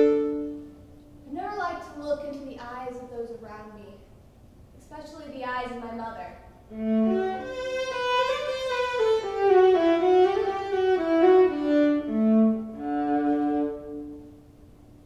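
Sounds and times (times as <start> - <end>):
solo violin bowed notes: 0.0 - 0.8, 6.7 - 14.4.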